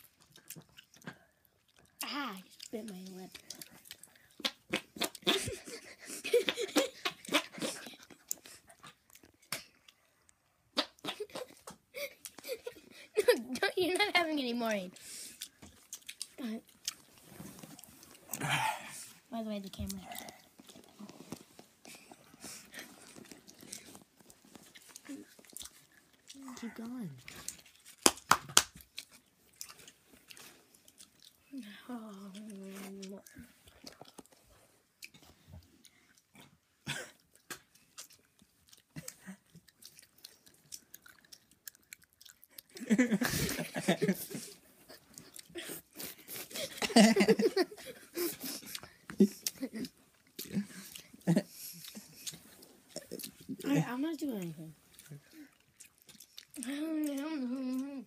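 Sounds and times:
person chewing gum: 0.0 - 13.6, 14.6 - 58.0.

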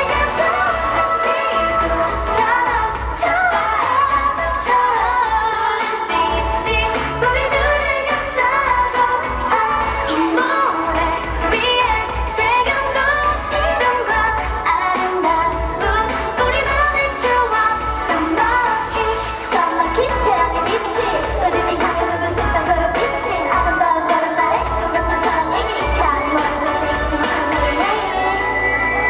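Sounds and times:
female group vocals: 0.0 - 29.0
pop dance track: 0.0 - 29.0.

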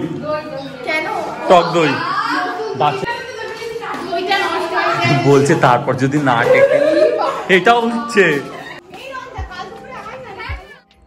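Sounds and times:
music with thumping beat: 8.8 - 11.0.

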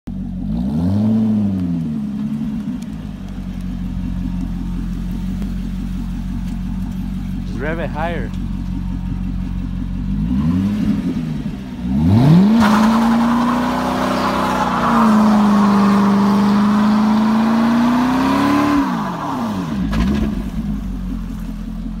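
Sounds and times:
car engine revving: 0.1 - 22.0.

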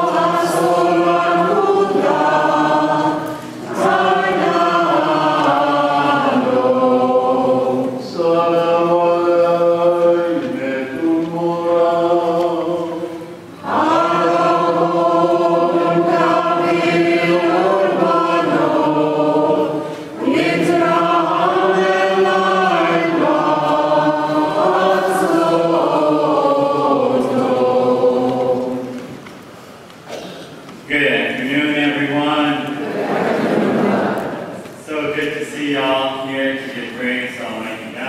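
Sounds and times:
group chanting: 0.0 - 29.0, 32.8 - 34.6.

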